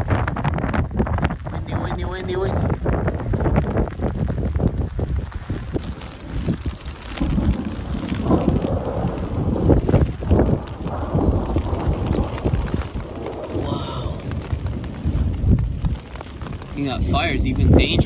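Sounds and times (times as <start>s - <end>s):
gusty wind buffeting microphone: 0.0s - 18.0s
rain falling: 0.0s - 18.0s.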